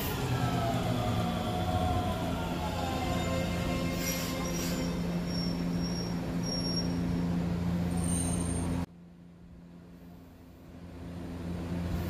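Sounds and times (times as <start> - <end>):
electric train rolling: 0.0 - 8.9.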